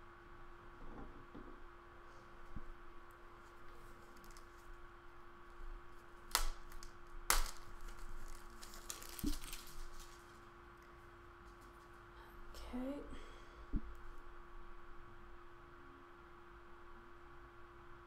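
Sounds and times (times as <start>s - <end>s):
steady electrical hum: 0.0s - 18.0s
sharp crackles: 6.2s - 10.4s.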